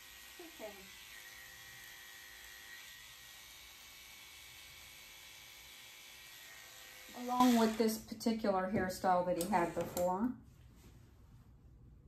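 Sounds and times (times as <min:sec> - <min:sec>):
electric clippers buzzing: 0:00.0 - 0:08.0.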